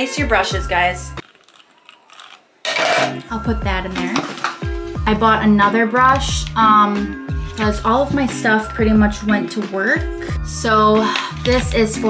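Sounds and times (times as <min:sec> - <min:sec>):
loud clatter of hard objects: 0:02.7 - 0:03.2.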